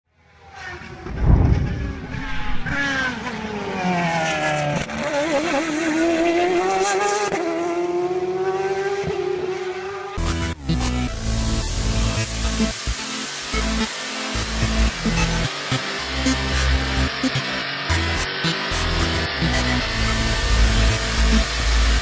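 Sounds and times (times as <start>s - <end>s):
race car engine high revs: 0.5s - 22.0s
low thump: 1.0s - 2.7s.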